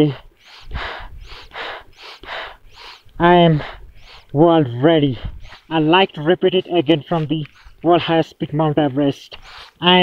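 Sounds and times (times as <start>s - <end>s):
heavy breathing through a mask: 0.0s - 6.3s, 7.3s - 7.9s, 9.3s - 9.9s.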